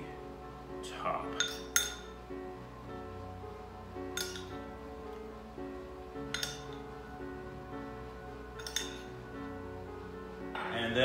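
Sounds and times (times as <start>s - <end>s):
background music: 0.0s - 11.0s
spoon clinking against ceramic bowl: 1.4s - 2.1s, 4.2s - 4.5s, 6.3s - 6.8s, 8.6s - 9.1s.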